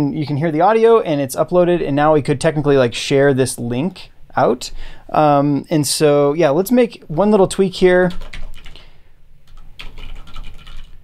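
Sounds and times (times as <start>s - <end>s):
keyboard typing: 8.0s - 8.8s, 9.4s - 11.0s.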